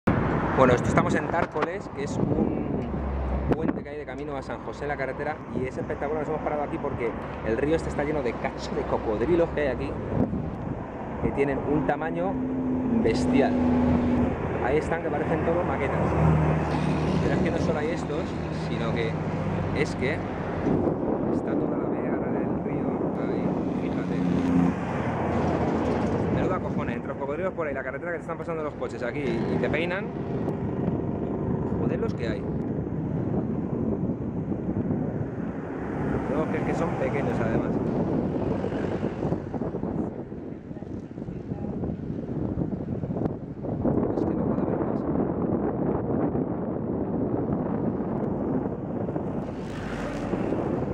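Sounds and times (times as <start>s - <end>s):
highway traffic passing: 0.0s - 44.1s, 45.4s - 50.9s
wind on microphone: 0.0s - 50.9s.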